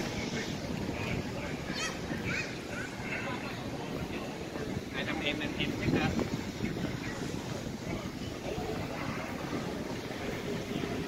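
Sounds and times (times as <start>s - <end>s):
people chattering: 0.0s - 11.0s
steady traffic noise: 0.0s - 11.0s
wind rumbling on microphone: 0.0s - 11.0s.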